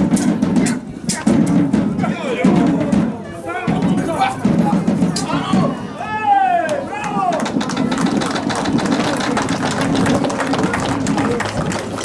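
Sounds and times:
murmur of onlookers: 0.0 - 12.0.

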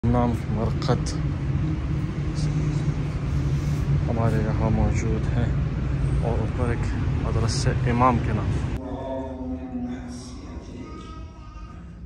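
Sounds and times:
steady low rumble with hum: 0.0 - 10.8.

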